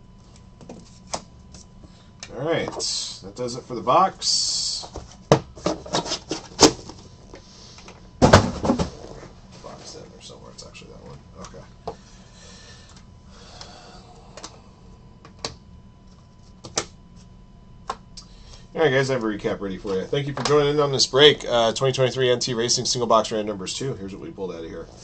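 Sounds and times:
thud on table: 8.2s - 8.9s.

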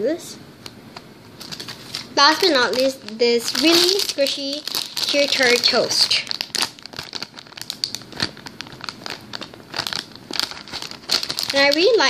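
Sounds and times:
plastic packaging crinkling: 1.3s - 12.0s.

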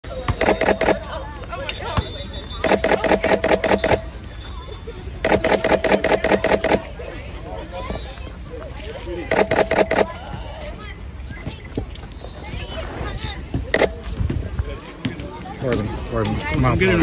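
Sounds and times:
faint voices chattering: 0.0s - 17.0s
camera shutters firing in bursts: 0.4s - 1.0s, 2.6s - 4.1s, 5.2s - 6.9s, 9.3s - 10.1s, 13.8s - 14.0s
steady whir: 2.6s - 4.2s.

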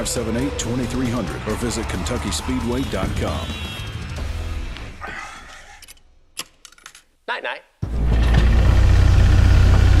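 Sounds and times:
deep mechanical rumble: 7.8s - 10.0s.

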